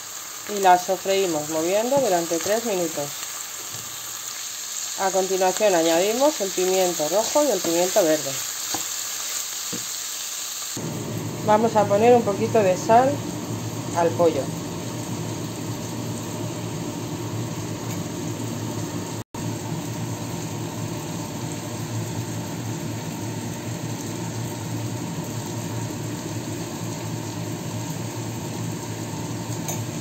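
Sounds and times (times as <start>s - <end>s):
steady kitchen rushing noise: 0.6s - 4.1s.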